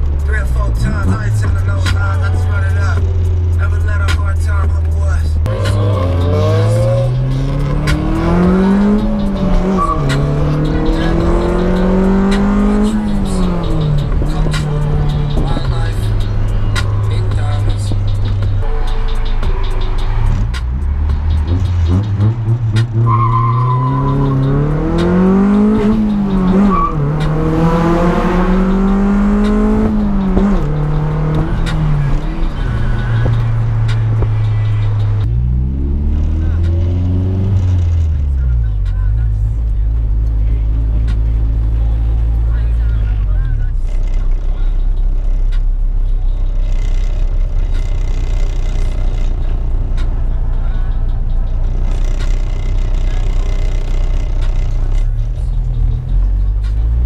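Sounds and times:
car engine accelerating through gears: 0.0s - 57.0s.

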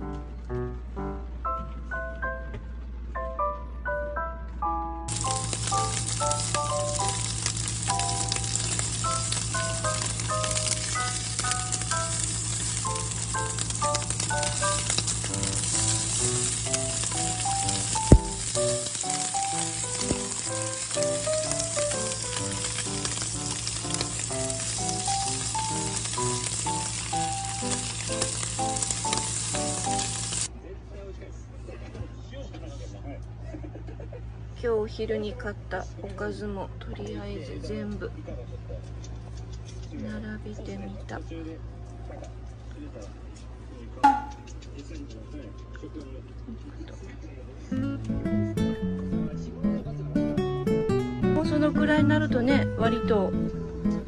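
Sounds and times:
background music: 0.0s - 30.4s, 47.8s - 54.0s
meat sizzling in a frying pan: 5.1s - 30.5s.

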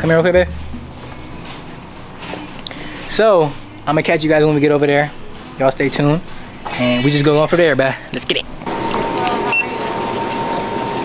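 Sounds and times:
barcode scanner beep: 9.5s - 9.8s.

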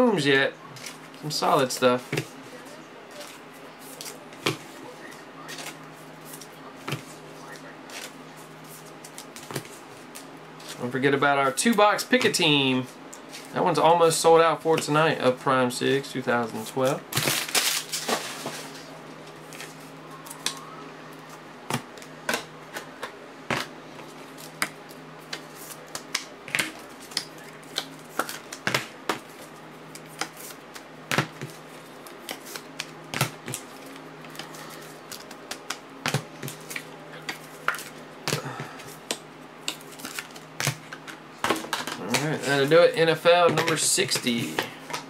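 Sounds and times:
steady low hum: 0.0s - 45.0s.

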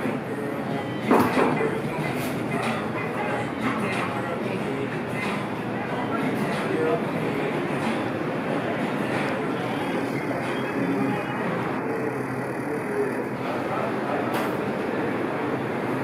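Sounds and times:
din of indistinct voices: 0.0s - 16.0s.

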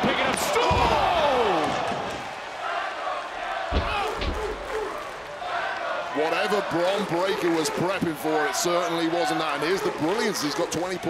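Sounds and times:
bodies thudding on wrestling ring: 3.7s - 4.8s.

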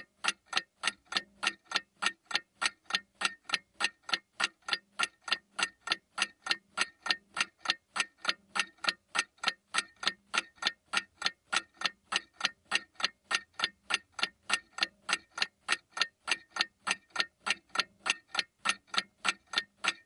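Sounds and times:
clock-like ticking: 0.0s - 20.0s.

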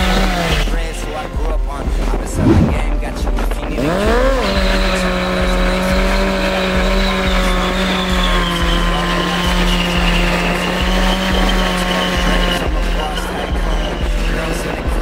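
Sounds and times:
motorcycle engine revving: 3.6s - 15.0s
tyre squealing on asphalt: 4.5s - 15.0s
music with steady beat: 9.9s - 15.0s.

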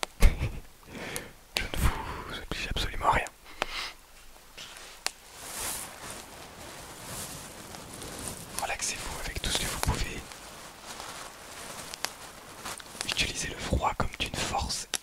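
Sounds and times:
fabric pouch rustling: 4.6s - 13.8s.

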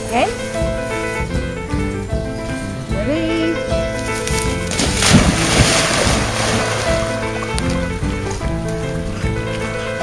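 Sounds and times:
background music: 0.0s - 10.0s
dog splashing into water: 4.2s - 7.9s.

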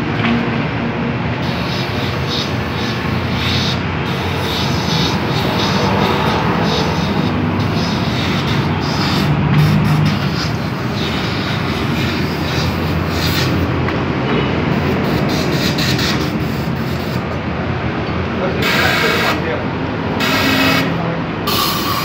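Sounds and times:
pressurised flow rushing through hose: 1.4s - 13.8s.

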